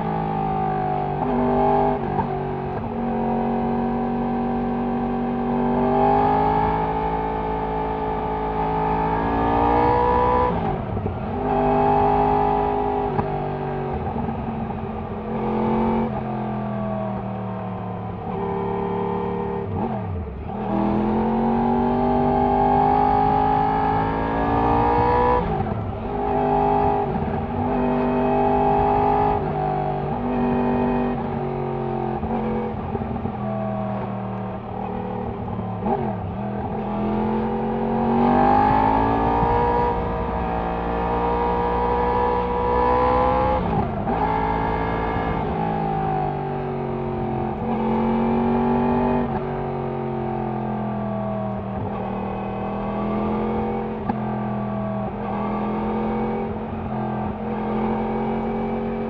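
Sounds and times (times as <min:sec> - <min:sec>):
motorcycle engine revving: 0:01.3 - 0:59.0.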